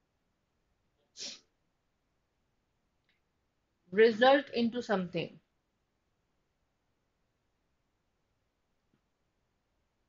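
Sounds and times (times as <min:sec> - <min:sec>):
person sniffing or exhaling: 0:01.1 - 0:01.5.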